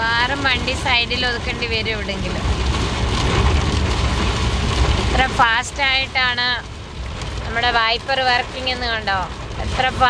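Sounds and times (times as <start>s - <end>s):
heavy rain drumming on car roof: 0.0s - 10.0s
low rumble of moving car: 0.0s - 10.0s.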